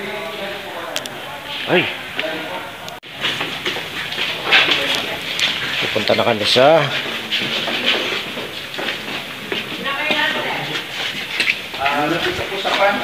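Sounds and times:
people talking indistinctly: 3.6 - 13.0.

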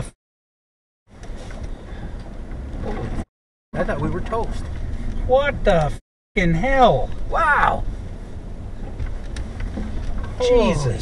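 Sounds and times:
road and engine noise: 1.1 - 11.0.

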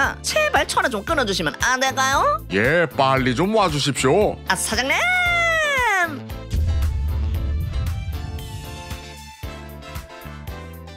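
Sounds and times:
music: 0.0 - 10.9.

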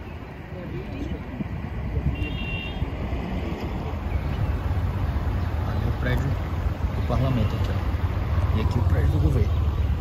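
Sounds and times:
traffic rumble: 0.0 - 10.0
wind on microphone: 0.8 - 4.7.

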